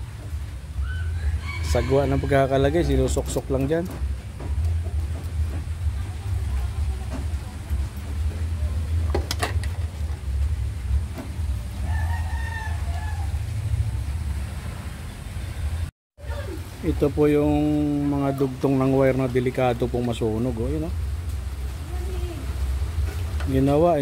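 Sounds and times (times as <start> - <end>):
rooster crowing: 0.7 - 3.2, 11.7 - 14.0
steady low rumble: 2.1 - 15.9, 16.6 - 24.0.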